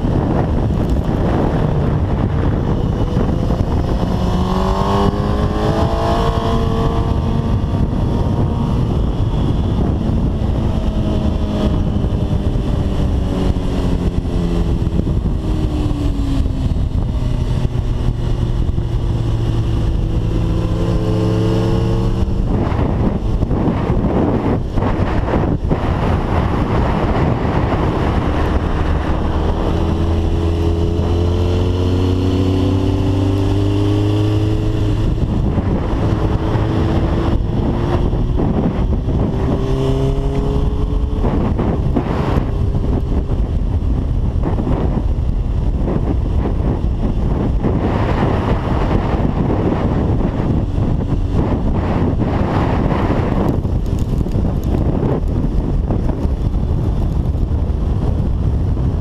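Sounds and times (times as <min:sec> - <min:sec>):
motorcycle engine accelerating: 0:00.0 - 0:59.0
wind rush on microphone: 0:00.0 - 0:59.0.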